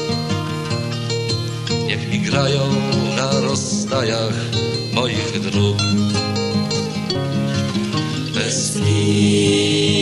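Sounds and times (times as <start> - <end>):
plucked acoustic guitar: 0.0 - 10.0
person singing: 8.3 - 10.0.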